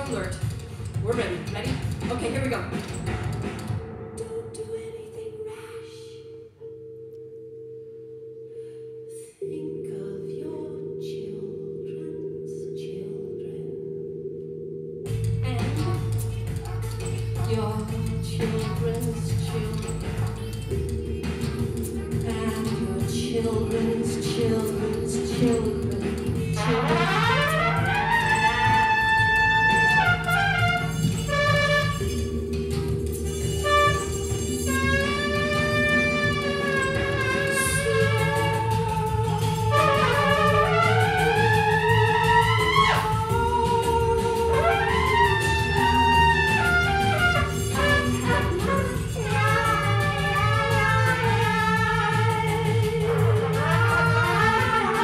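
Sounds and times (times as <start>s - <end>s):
woman singing: 0.0s - 2.9s, 4.1s - 6.4s, 9.1s - 13.8s, 15.3s - 32.4s, 33.1s - 55.0s
ticking electronic beat: 0.0s - 4.0s, 15.0s - 55.0s
electronically processed trumpet: 20.7s - 55.0s.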